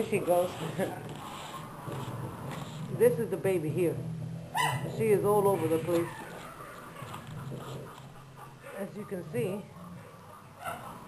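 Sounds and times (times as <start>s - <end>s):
woman speaking: 0.0s - 1.0s, 2.9s - 4.0s, 4.9s - 6.3s, 8.8s - 9.7s
puppies making quiet sounds: 5.5s - 11.0s.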